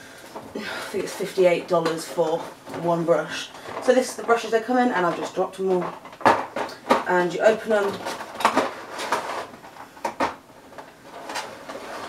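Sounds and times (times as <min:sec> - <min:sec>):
box and plastic tray handled: 0:05.0 - 0:10.4.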